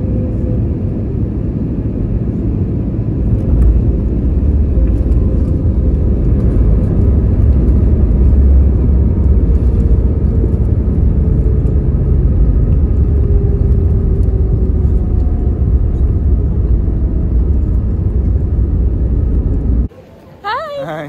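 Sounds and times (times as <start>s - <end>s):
faint jet engine tone: 0.0s - 7.1s, 10.9s - 21.0s
jet airliner cabin rumble: 0.0s - 21.0s.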